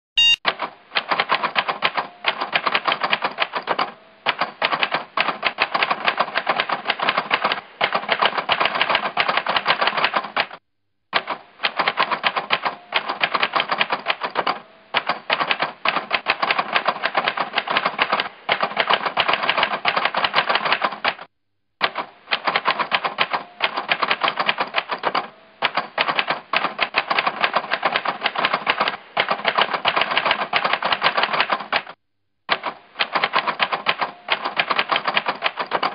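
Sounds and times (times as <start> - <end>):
typewriter keystroke clicks: 0.2 - 10.6, 11.2 - 35.9.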